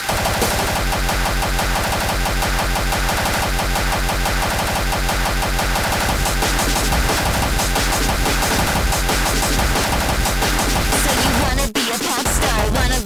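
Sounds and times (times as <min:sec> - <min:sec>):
distorted industrial dance music: 0:00.0 - 0:13.0.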